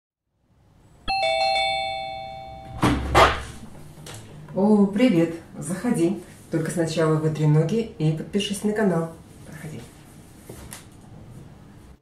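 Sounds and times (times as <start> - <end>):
two-tone doorbell chime: 1.1 - 2.9
door opening: 2.5 - 4.3.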